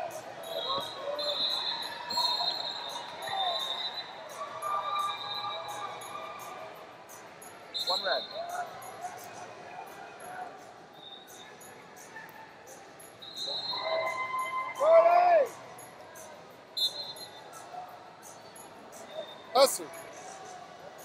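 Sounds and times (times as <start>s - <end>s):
referee whistle blasts: 0.4s - 5.8s, 7.7s - 8.5s, 13.2s - 15.0s, 16.8s - 17.4s
people shouting: 13.6s - 15.6s.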